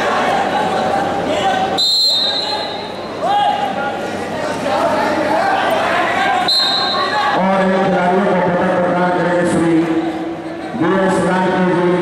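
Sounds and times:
high whistle tone: 0:01.8 - 0:03.0, 0:06.5 - 0:07.2
men's voices echoing in a hall: 0:03.1 - 0:12.0.

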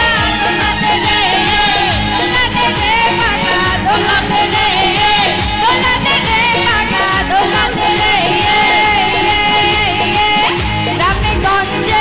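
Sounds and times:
live band playing: 0:00.0 - 0:12.0
woman singing pop song: 0:00.0 - 0:12.0.

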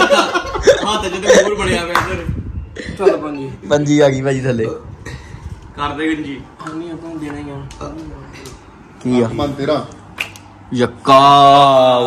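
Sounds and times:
sharp snap: 0:10.1 - 0:10.6.

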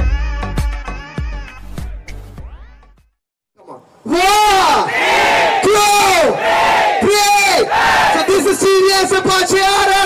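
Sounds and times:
voices shouting in unison: 0:03.6 - 0:08.6.

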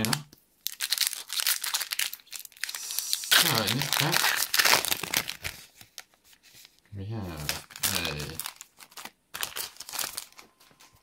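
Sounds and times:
foil wrapper crinkling and tearing: 0:00.0 - 0:06.2, 0:07.4 - 0:10.9.

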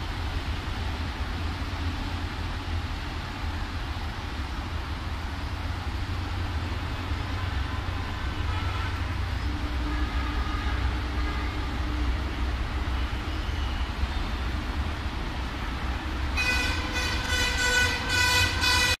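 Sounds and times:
loud horn blasts: 0:07.3 - 0:12.3, 0:16.4 - 0:19.0.

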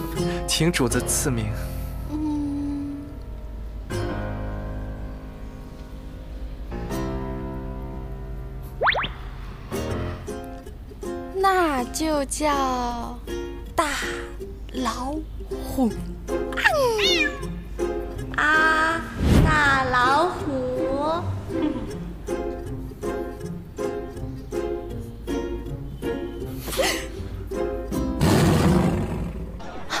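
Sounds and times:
light background music: 0:00.0 - 0:28.4
cat meowing: 0:16.6 - 0:17.6
loud tiger-like roar: 0:28.2 - 0:29.6.

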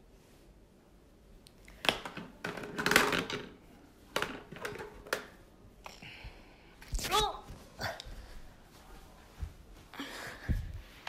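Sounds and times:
plastic clattering: 0:01.8 - 0:05.4.

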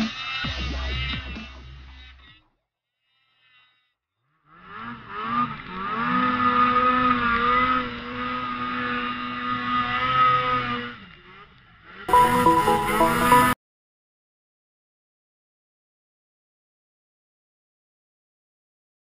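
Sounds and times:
snowmobile engine revving: 0:04.6 - 0:11.4.

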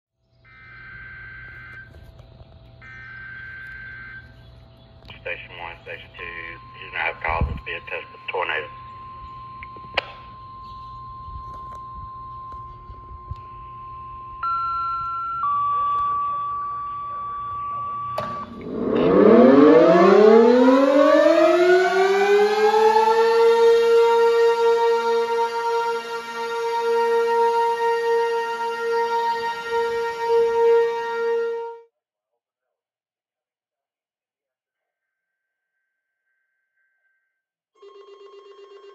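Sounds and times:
warning siren wailing: 0:00.5 - 0:31.8
radio click: 0:05.0 - 0:08.5, 0:09.6 - 0:10.3
shrill digital data tones: 0:05.7 - 0:19.5.

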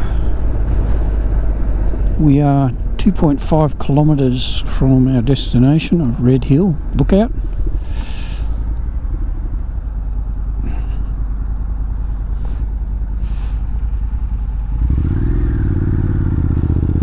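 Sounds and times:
motorcycle engine accelerating: 0:08.8 - 0:17.0.

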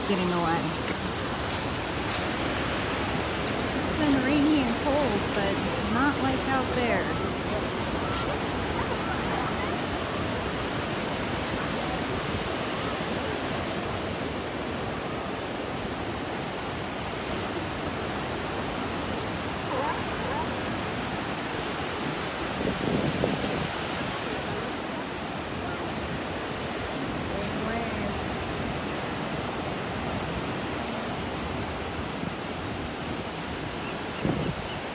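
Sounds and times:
ocean surf on beach: 0:00.0 - 0:34.9.

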